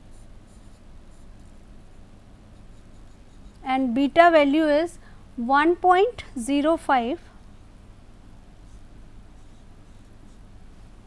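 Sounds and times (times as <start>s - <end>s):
low room hum: 0.0s - 11.0s
pen scratching on writing board: 2.5s - 3.6s.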